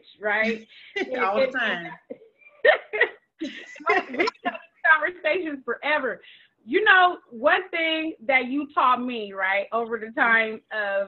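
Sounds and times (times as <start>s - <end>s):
woman laughing: 0.4s - 4.6s.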